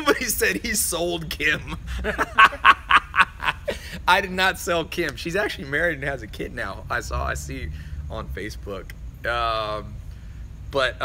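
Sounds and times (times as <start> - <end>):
man laughing: 0.0 - 4.4.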